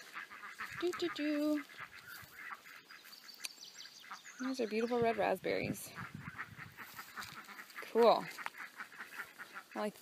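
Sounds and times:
rapid bird calls: 0:00.0 - 0:10.0.

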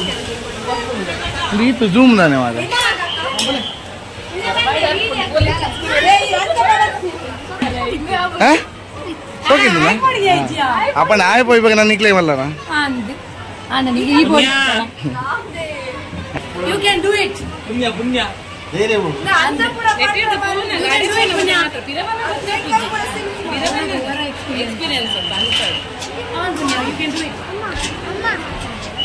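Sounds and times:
people chattering: 0:00.0 - 0:29.0
people talking: 0:00.0 - 0:29.0.

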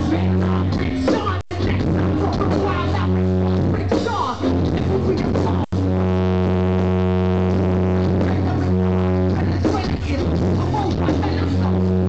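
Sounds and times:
distorted keyboard low note: 0:00.0 - 0:12.0.

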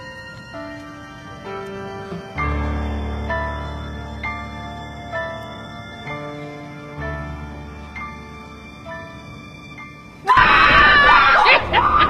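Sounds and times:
men screaming in fright: 0:10.3 - 0:12.0.

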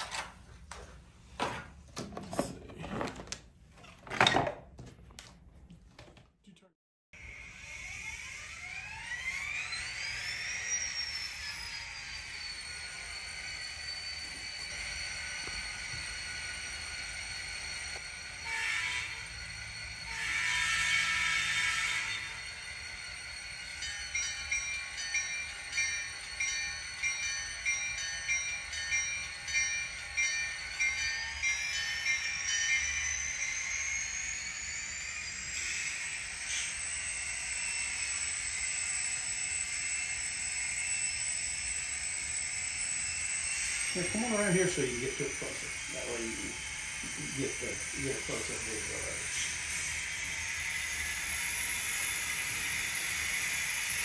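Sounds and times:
model diesel engine whine: 0:08.8 - 0:54.0
locomotive bell ringing: 0:09.8 - 0:38.7, 0:43.0 - 0:54.0.

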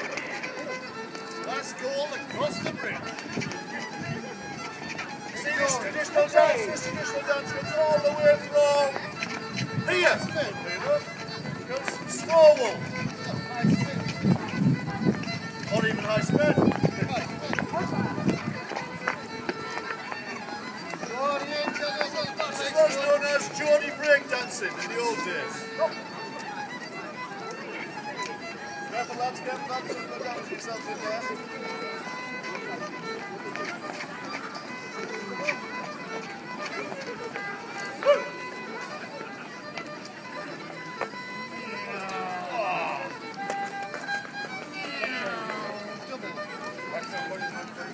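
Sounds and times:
shoes tapping on paving: 0:00.0 - 0:47.9
solo fiddle dance tune: 0:00.0 - 0:47.9
dancers' feet tapping: 0:11.0 - 0:23.2, 0:40.7 - 0:46.8.

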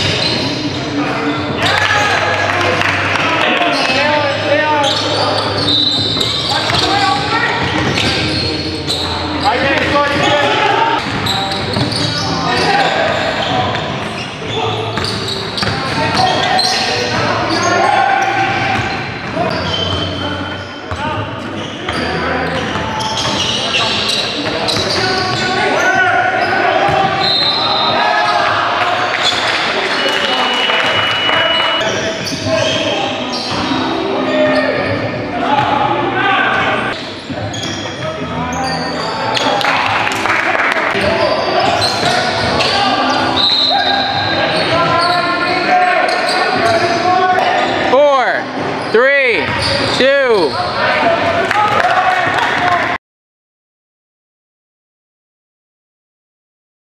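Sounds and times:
sneakers squealing: 0:00.0 - 0:52.6
players calling out: 0:00.0 - 0:52.9
basketball bouncing on court: 0:06.0 - 0:08.2, 0:14.9 - 0:16.4, 0:26.9 - 0:27.2
whistle blast: 0:30.0 - 0:31.9.

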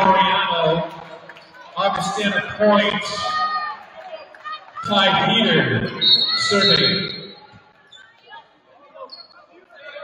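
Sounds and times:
faint voices and chatter: 0:00.0 - 0:10.0.

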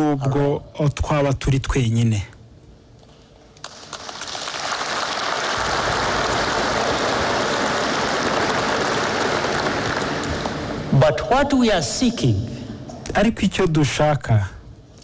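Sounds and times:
large audience applauding: 0:03.6 - 0:10.6.

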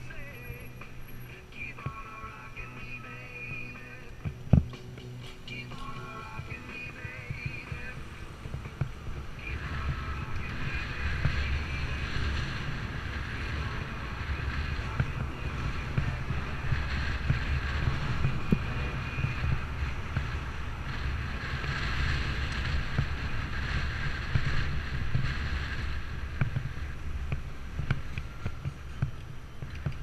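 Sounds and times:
road traffic: 0:00.0 - 0:30.0
tyres on the street: 0:00.0 - 0:30.0
wind rushing over microphone: 0:00.0 - 0:30.0.

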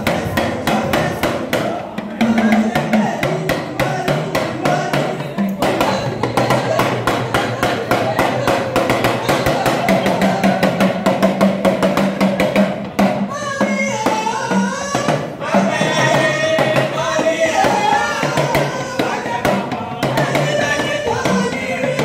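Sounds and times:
fast dense drumming: 0:00.0 - 0:22.0
woman singing: 0:13.3 - 0:22.0.

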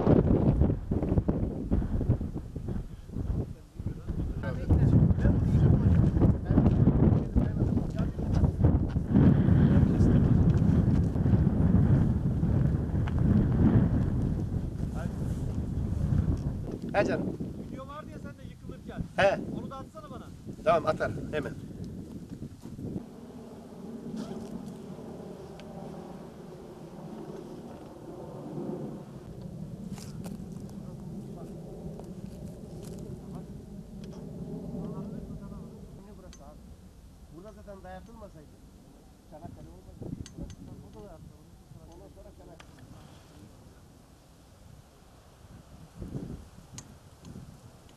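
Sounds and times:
wind buffeting microphone: 0:00.0 - 0:38.4, 0:39.4 - 0:43.9, 0:44.6 - 0:47.9
low steady rumble: 0:00.0 - 0:47.9
people talking indistinctly: 0:16.9 - 0:21.7.

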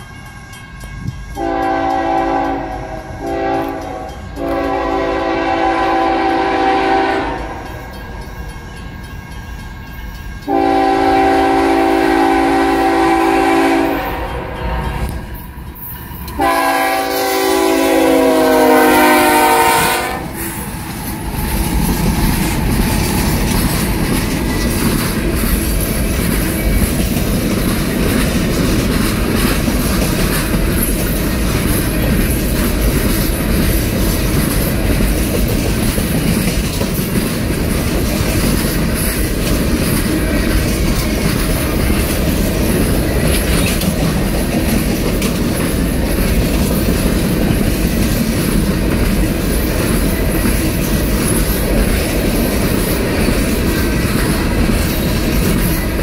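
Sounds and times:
locomotive air horn blasts: 0:01.4 - 0:07.7, 0:10.5 - 0:15.1, 0:16.4 - 0:20.4
freight cars rolling clatter: 0:20.4 - 0:56.0.

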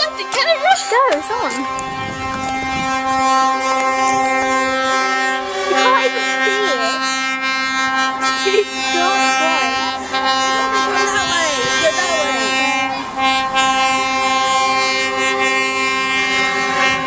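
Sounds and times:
lorry air horn blast: 0:00.0 - 0:17.0
people calling out: 0:05.6 - 0:07.3, 0:08.0 - 0:14.8.

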